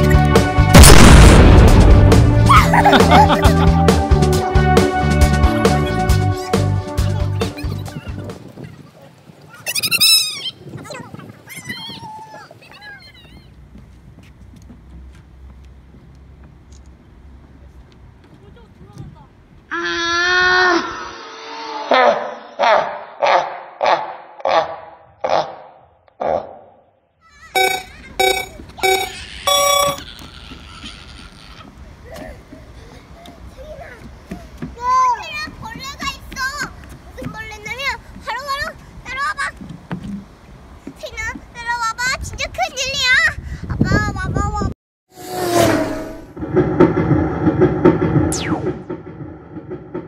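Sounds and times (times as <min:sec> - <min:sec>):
child squealing: 0:09.6 - 0:10.6, 0:11.5 - 0:13.5, 0:28.9 - 0:32.3
electronic countdown beeps: 0:27.6 - 0:30.0.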